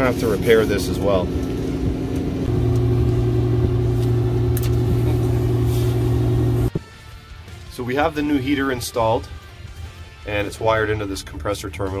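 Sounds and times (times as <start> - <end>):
low mechanical hum: 0.0 - 6.7.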